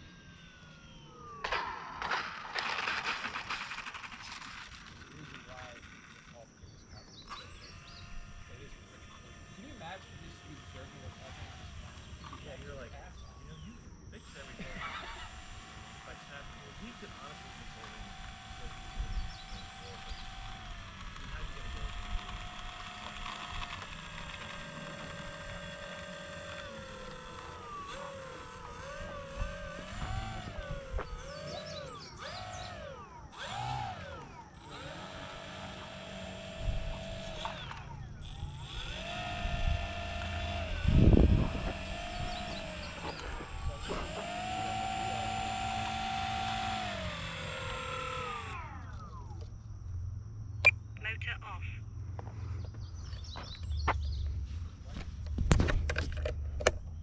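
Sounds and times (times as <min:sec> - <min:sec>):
electric model plane motor whining: 0:00.0 - 0:49.6.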